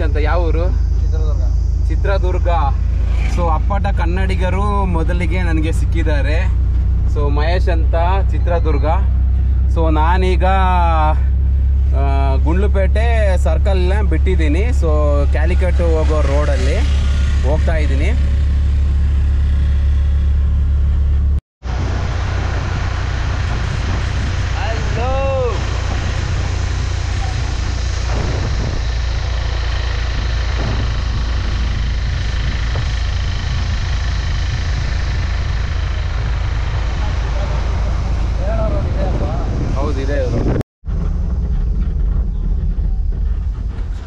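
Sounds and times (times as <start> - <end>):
road noise: 0.0 - 44.0
truck engine drone: 0.0 - 44.0
wind rushing: 2.6 - 5.7, 21.6 - 44.0.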